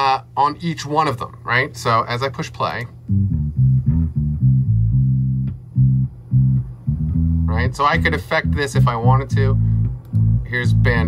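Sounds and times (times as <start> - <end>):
electric bass plucked notes: 3.0 - 11.0.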